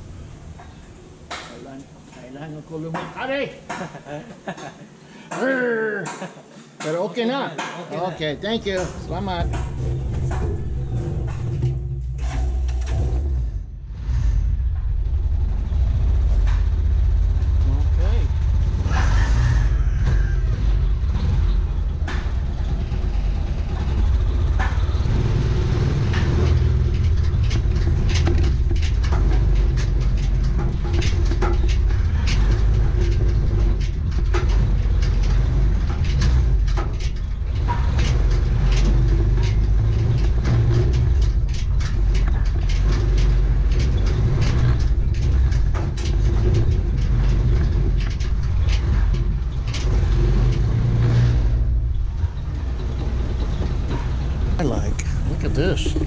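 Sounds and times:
cab and frame rattling: 0:06.1 - 0:13.8, 0:14.5 - 0:56.0.

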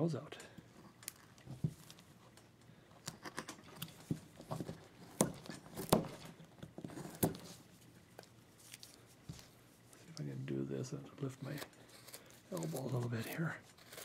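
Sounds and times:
chisel cutting wood: 0:11.3 - 0:14.0.

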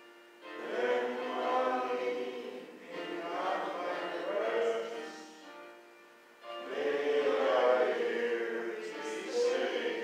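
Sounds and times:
congregation singing a hymn: 0:00.5 - 0:05.4, 0:06.5 - 0:10.0.

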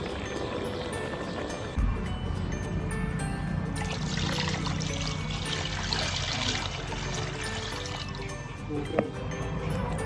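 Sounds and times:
background music: 0:00.0 - 0:10.0
water pouring into basin: 0:03.9 - 0:08.3.

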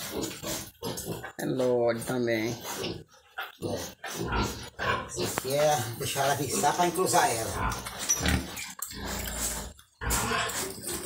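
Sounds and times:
pigs grunting: 0:00.0 - 0:11.0.

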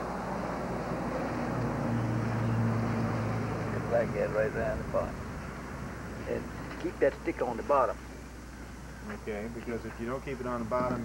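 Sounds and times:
constant hiss: 0:00.0 - 0:11.0
low engine hum: 0:00.0 - 0:11.0.

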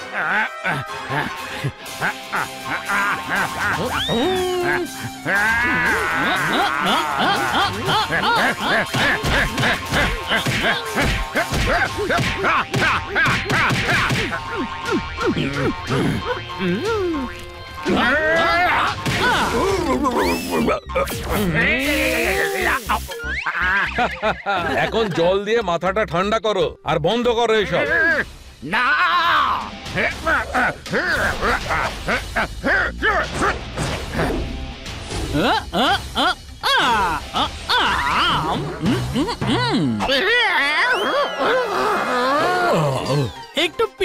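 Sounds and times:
cartoon voice laughing: 0:00.0 - 0:14.6, 0:18.8 - 0:24.9
background music: 0:00.0 - 0:44.0
sliding comic sound effects: 0:17.9 - 0:23.4.

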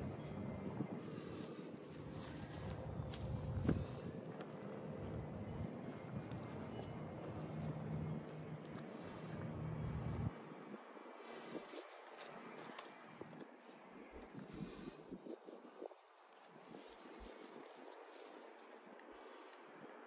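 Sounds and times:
faint low rumble: 0:00.0 - 0:11.6.

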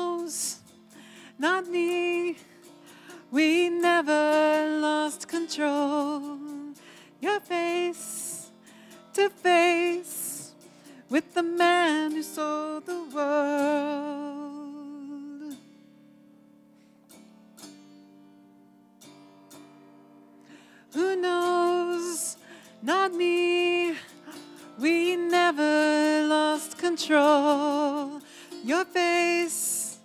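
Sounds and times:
woman singing with vibrato: 0:00.0 - 0:15.6, 0:20.9 - 0:30.0
autoharp strumming: 0:00.0 - 0:30.0.

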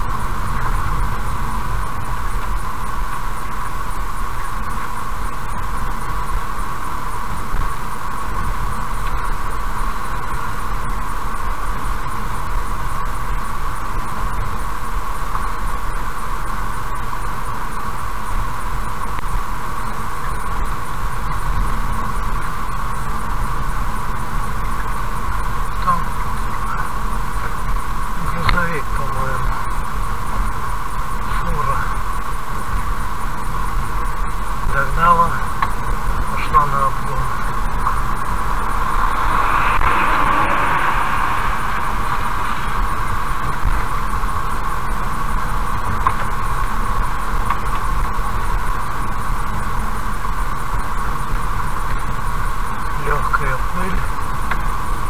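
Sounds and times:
car road and engine noise: 0:00.0 - 0:55.0
rushing noise: 0:35.8 - 0:47.8.

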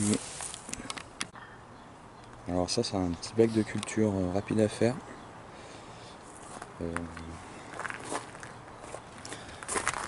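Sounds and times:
footsteps on gravel: 0:06.3 - 0:10.0.

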